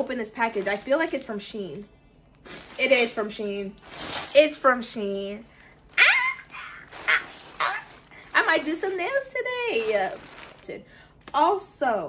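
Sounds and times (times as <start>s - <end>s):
woman's excited squeal: 6.0s - 7.9s.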